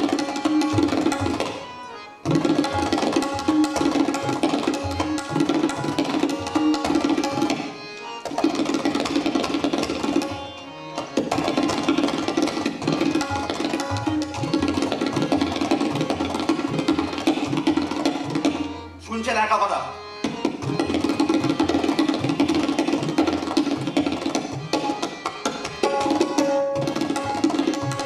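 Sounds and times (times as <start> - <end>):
tabla treble drum strokes: 0.0 - 1.7, 2.3 - 7.7, 8.3 - 10.4, 11.2 - 18.8, 20.2 - 28.0.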